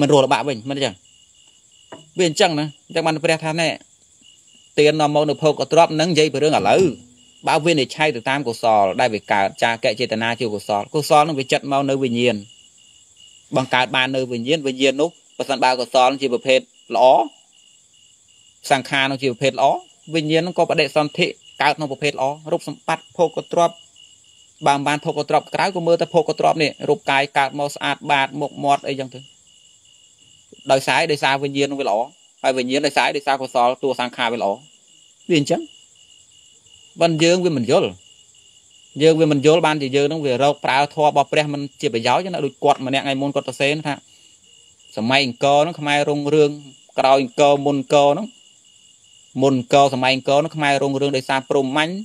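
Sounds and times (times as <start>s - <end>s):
man preaching: 0.0s - 1.0s, 2.2s - 3.8s, 4.7s - 12.5s, 13.5s - 17.4s, 18.7s - 23.8s, 24.6s - 29.2s, 30.6s - 34.6s, 35.3s - 35.7s, 37.0s - 38.0s, 39.0s - 44.1s, 45.0s - 48.3s, 49.4s - 52.0s
insects chirping: 0.0s - 52.0s
man speaking in short phrases: 4.8s - 9.3s
faint high-pitched tone: 5.8s - 8.1s.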